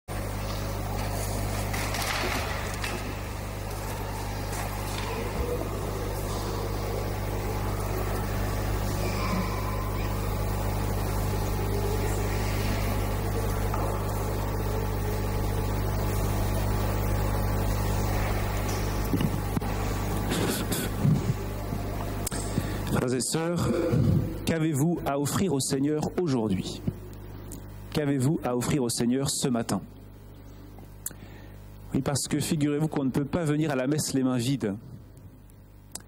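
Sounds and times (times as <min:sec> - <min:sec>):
steady low hum: 0:00.1 - 0:36.0.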